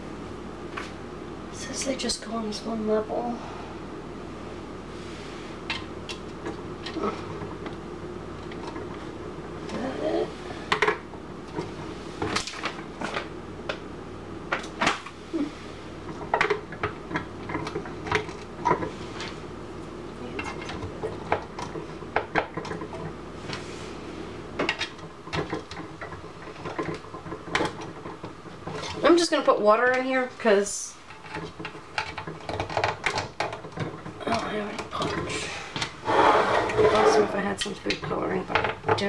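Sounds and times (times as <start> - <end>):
plastic parts clicking and clattering: 31.1 - 35.9.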